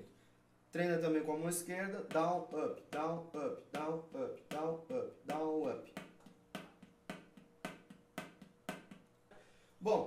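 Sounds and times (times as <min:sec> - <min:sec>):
drumstick striking practice pad: 0:02.0 - 0:09.1.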